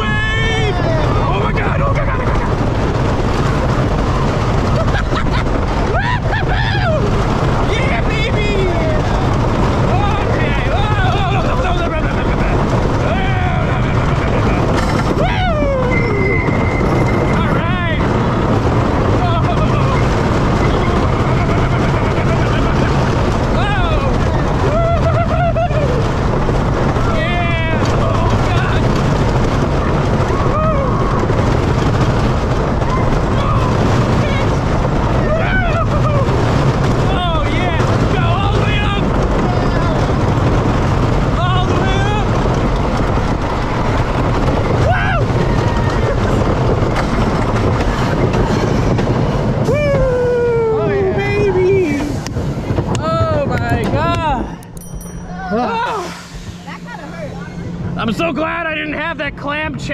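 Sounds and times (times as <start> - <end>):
riders yelling: 0.0 - 48.3, 49.6 - 52.2
roller coaster wheels rumbling: 0.0 - 59.9.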